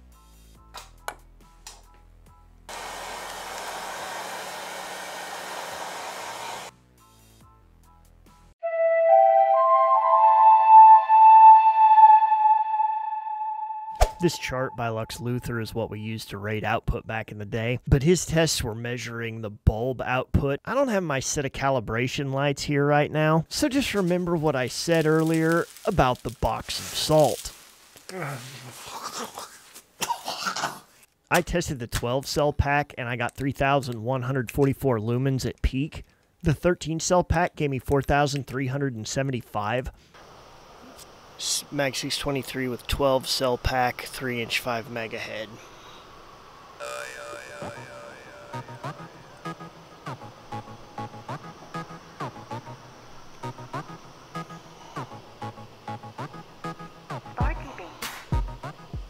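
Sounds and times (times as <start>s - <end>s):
heat gun blowing: 2.7s - 6.7s
music with sliding held notes: 8.6s - 13.2s
man coughing and sputtering: 28.9s - 31.0s.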